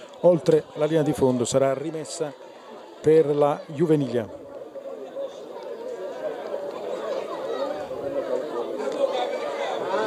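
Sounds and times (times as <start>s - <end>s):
crowd chatter and calling: 0.0s - 10.0s.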